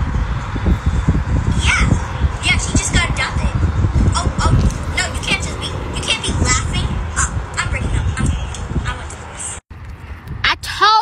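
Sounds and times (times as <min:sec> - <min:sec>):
steady low rumble: 0:00.0 - 0:10.5
girl talking: 0:01.6 - 0:09.2.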